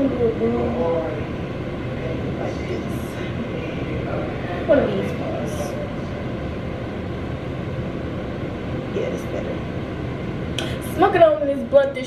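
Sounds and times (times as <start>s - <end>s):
fan whirring: 0.0s - 12.0s.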